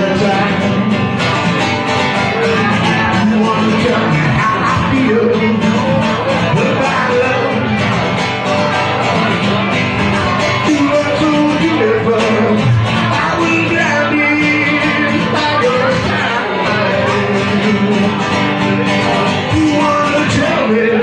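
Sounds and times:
acoustic guitar: 0.0 - 21.0
man singing: 0.0 - 21.0.

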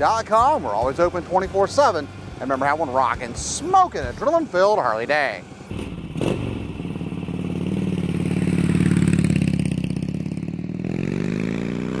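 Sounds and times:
motorcycle engine revving: 5.7 - 12.0.

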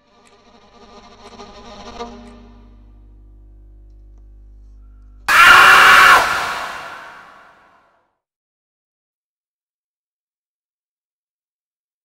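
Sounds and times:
loud burst of harsh noise: 5.3 - 7.6.

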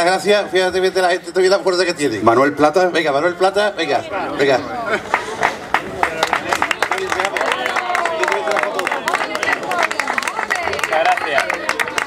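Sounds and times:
voices: 2.9 - 12.0
crowd applauding: 5.0 - 12.0.

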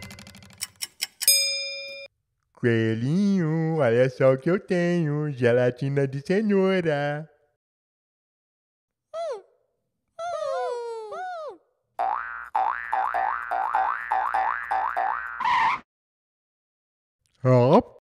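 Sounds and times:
springy cartoon boings: 12.0 - 15.8
high squeaky cartoon chirps: 15.0 - 15.8.

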